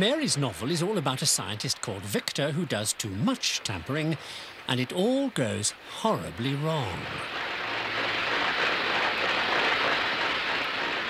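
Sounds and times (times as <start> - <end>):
rushing hissing noise: 0.0 - 11.0.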